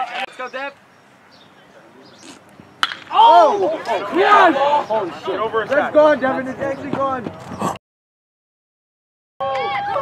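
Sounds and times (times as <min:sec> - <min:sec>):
open-air ambience: 0:00.0 - 0:07.8
baseball bat hitting ball: 0:02.8 - 0:03.2.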